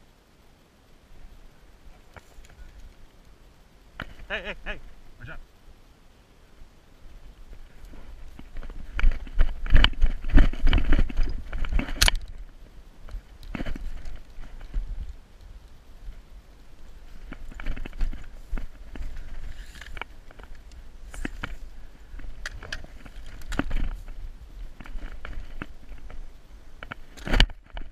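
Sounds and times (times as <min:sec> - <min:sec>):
rustling: 0:00.0 - 0:27.9.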